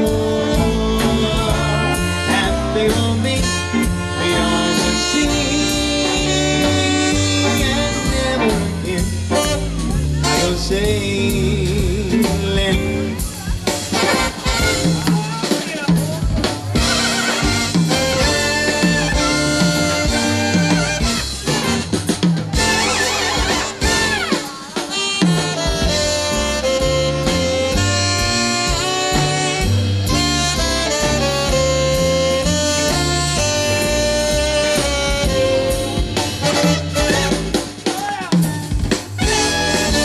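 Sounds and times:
swing band playing: 0.0 - 40.0.

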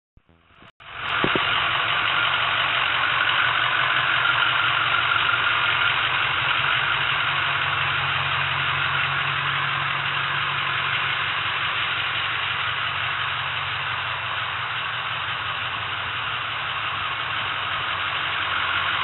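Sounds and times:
diesel engine idling: 0.2 - 19.0.

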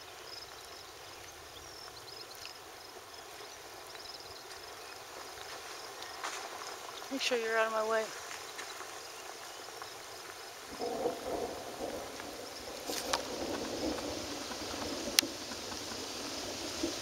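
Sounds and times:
rain and running water: 0.0 - 17.0.

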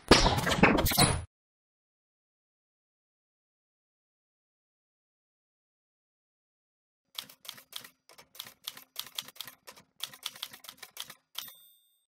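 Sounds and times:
keyboard keystrokes typing: 7.1 - 11.7.

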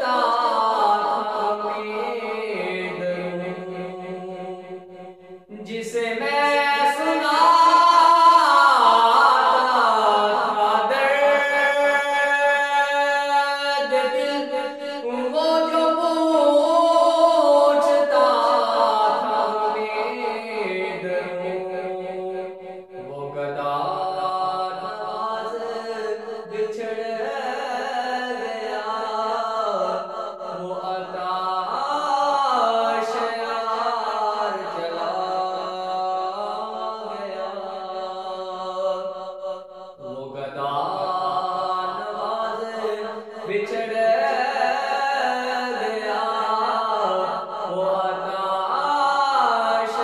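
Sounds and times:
man singing long held notes: 0.0 - 50.0.

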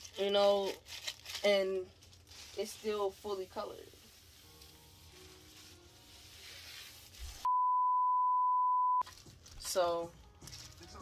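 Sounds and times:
steady test tone beep: 7.5 - 9.0.

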